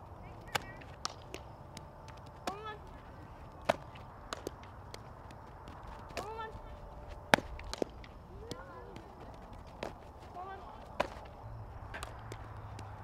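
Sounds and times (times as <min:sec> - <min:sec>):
softball smacking glove: 0:00.4 - 0:13.0
players shouting: 0:01.6 - 0:13.0.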